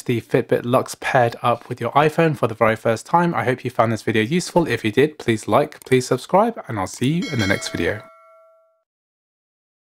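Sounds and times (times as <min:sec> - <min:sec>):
bell-like ding: 0:07.2 - 0:08.9.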